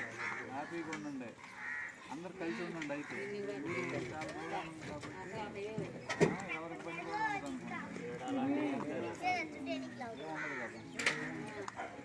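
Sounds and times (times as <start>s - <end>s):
crow cawing: 0.0s - 6.7s, 9.9s - 11.9s
men talking: 0.0s - 12.0s.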